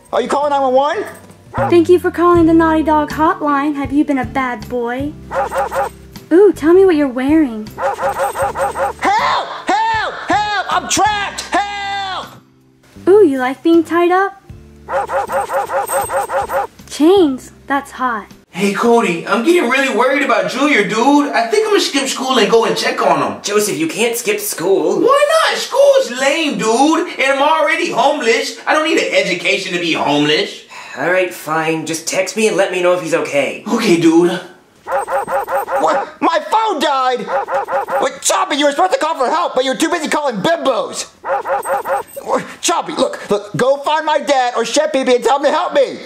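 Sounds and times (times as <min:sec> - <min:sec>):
short dog-like yips: 0:01.6 - 0:01.8, 0:05.3 - 0:06.0, 0:07.8 - 0:09.1, 0:14.8 - 0:16.7, 0:34.9 - 0:36.2, 0:37.2 - 0:38.1, 0:41.2 - 0:42.3.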